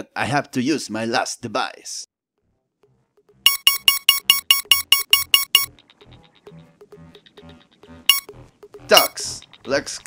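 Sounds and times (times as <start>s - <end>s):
bright electronic beeps: 3.5s - 5.8s, 8.1s - 8.4s
soft electronic blips: 3.5s - 6.6s, 7.6s - 8.4s.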